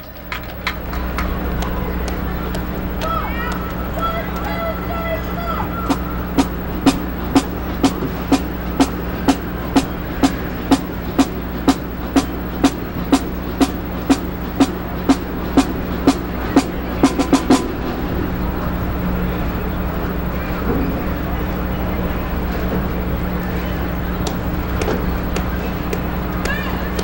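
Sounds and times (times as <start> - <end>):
steady low hum: 0.0 - 27.0
drumsticks clicking a tempo: 0.3 - 4.5.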